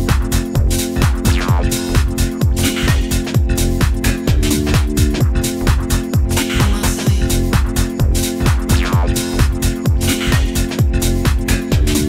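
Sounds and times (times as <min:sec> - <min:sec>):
minimal house music: 0:00.0 - 0:12.0.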